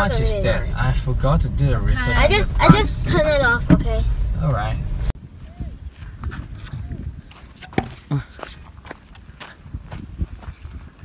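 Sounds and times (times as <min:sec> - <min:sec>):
irregular knocks: 0:02.6 - 0:04.0
footsteps on sandy stony ground: 0:05.3 - 0:11.0.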